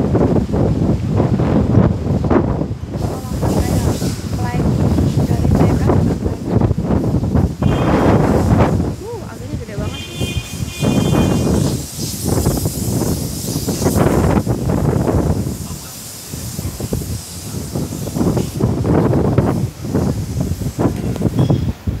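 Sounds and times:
tree leaves rustling: 0.0s - 22.0s
wind buffeting microphone: 0.0s - 22.0s.

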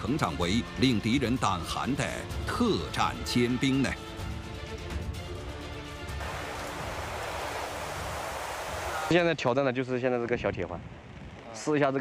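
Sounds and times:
rain falling steadily: 6.1s - 9.2s.

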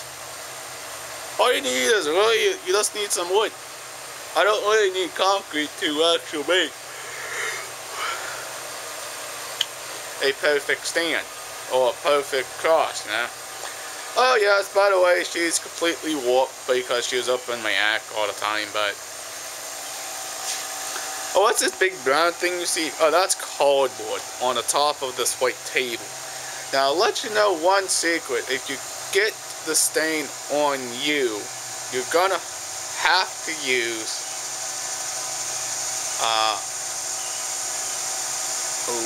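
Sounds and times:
faint hum: 0.0s - 34.4s
steady hiss: 0.0s - 39.0s
voice: 1.4s - 3.6s, 4.4s - 6.8s, 10.2s - 13.3s, 14.2s - 19.0s, 21.3s - 32.4s, 33.0s - 34.2s, 36.2s - 36.7s.

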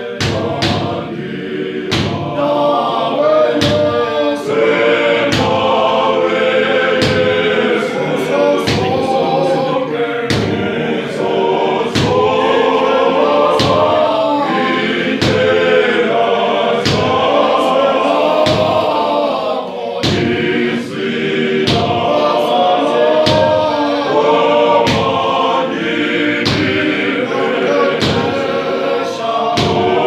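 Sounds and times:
men's choir singing a hymn: 0.0s - 30.0s
hand claps: 1.9s - 2.3s, 3.5s - 4.0s, 5.2s - 5.7s, 8.6s - 9.2s, 11.9s - 12.2s, 16.8s - 17.3s, 20.0s - 20.4s, 21.7s - 21.9s, 23.2s - 23.6s, 26.4s - 26.9s, 27.9s - 28.5s, 29.6s - 29.9s.

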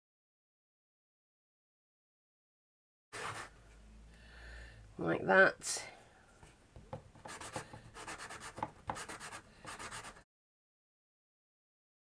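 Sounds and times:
hand sanding scratchy strokes: 3.2s - 3.5s, 7.3s - 10.2s.

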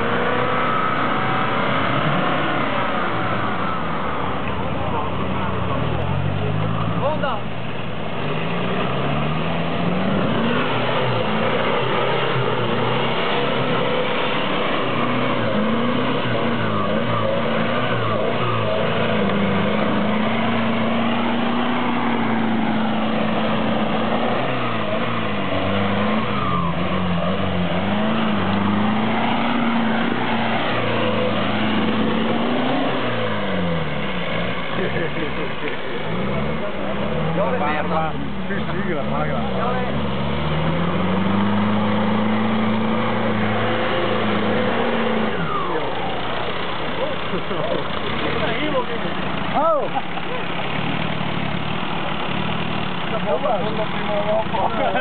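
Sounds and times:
engine revving under load: 0.0s - 55.0s.

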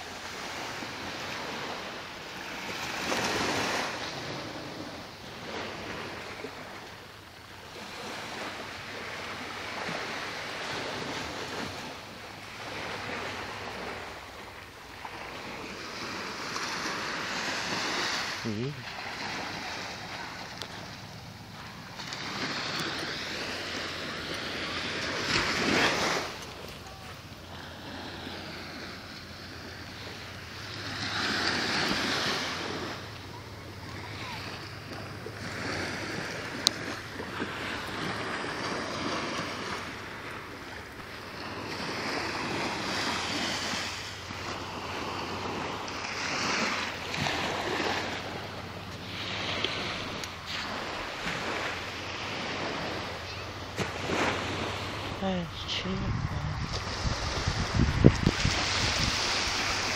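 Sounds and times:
waves washing onto shore: 0.0s - 59.9s.

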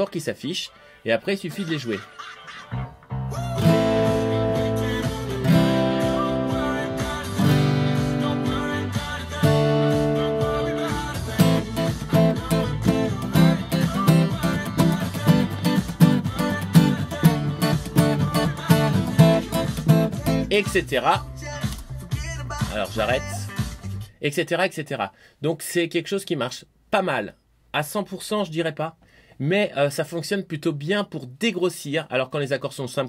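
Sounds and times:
acoustic guitar strumming chords: 2.8s - 21.8s.

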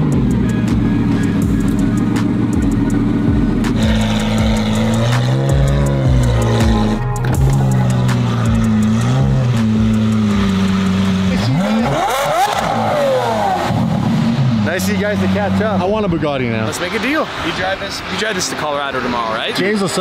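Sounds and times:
car engine idling and revving: 0.0s - 20.0s.

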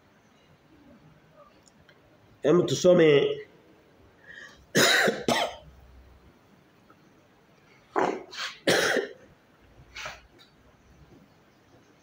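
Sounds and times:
man coughing: 4.7s - 5.6s, 8.6s - 9.2s.

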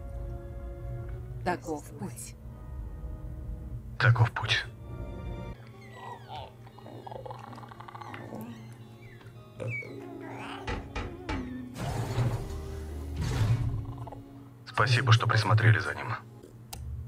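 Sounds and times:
background score music: 0.0s - 17.0s.

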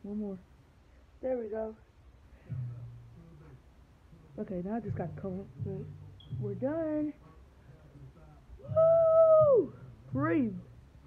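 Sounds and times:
woman whooping: 8.6s - 9.8s.

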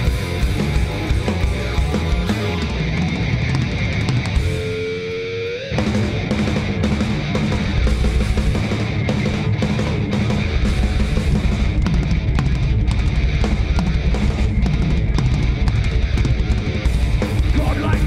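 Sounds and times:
distorted electric guitar: 0.0s - 18.0s
fast driving drums: 0.0s - 18.0s.

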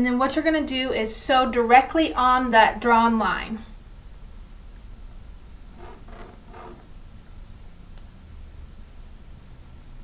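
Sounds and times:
low room hum: 0.0s - 10.0s
pencil drawing along ruler: 5.8s - 6.9s.

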